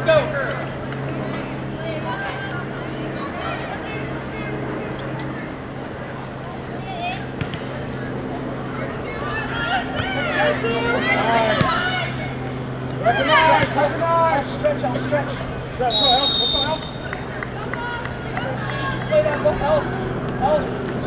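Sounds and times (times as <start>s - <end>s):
players shouting: 0.0s - 21.0s
steady low hum: 0.0s - 21.0s.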